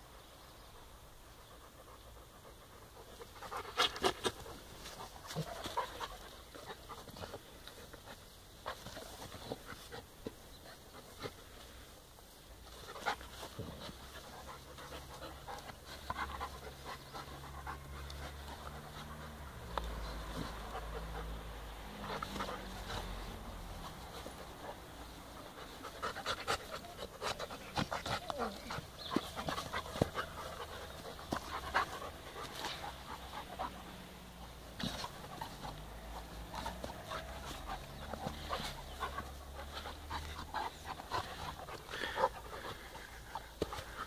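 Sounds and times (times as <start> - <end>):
dogs panting: 0.0 - 44.0
clicks and scuffs on grass: 3.0 - 44.0.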